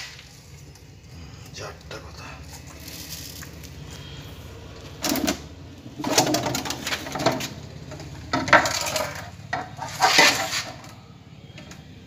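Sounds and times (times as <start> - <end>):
metal tongs scraping wood: 6.0 - 11.0.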